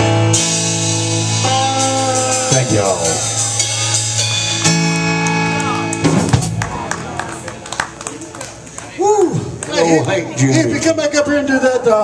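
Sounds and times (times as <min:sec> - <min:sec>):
blues rock band playing: 0:00.0 - 0:08.0.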